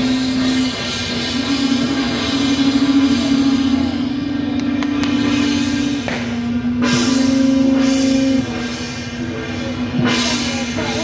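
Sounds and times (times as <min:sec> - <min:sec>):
brass horns blowing low note: 0:00.0 - 0:08.8.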